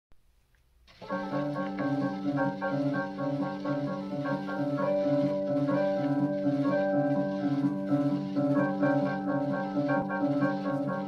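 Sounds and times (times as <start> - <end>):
record surface noise and hiss: 0.2 - 11.0
electric piano solo: 1.0 - 11.0.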